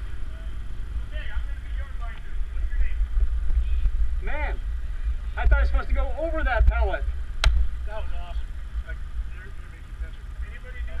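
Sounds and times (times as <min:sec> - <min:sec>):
people talking: 0:00.0 - 0:04.6, 0:05.4 - 0:07.1, 0:07.8 - 0:11.0
steady low rumble: 0:00.0 - 0:11.0
sharp click: 0:07.4 - 0:07.6.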